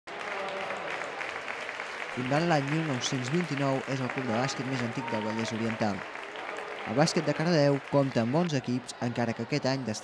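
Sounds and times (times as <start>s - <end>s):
audience applauding: 0.1s - 9.8s.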